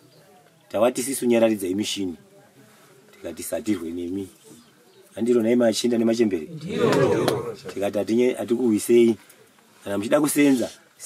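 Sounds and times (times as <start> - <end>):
man's deep drawn-out vocalization: 6.5 - 7.8.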